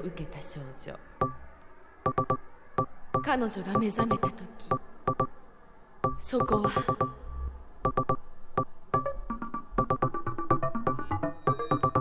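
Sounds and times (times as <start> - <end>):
beeping synth notes: 1.2 - 1.4, 2.1 - 5.3, 6.0 - 12.0.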